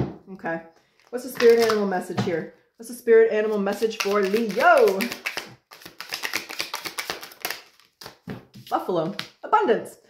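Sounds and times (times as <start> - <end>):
cards shuffling: 1.0 - 1.8, 3.5 - 9.4.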